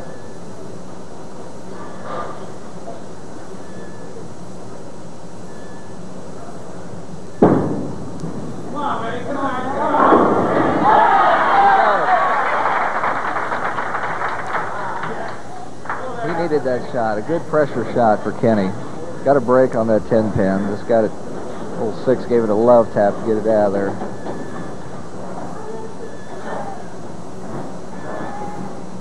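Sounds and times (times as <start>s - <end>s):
bowling ball thud on lane: 7.4s - 8.7s, 9.9s - 10.9s
bowling pins crashing: 7.4s - 28.9s
crowd cheering and shouting: 9.6s - 13.2s.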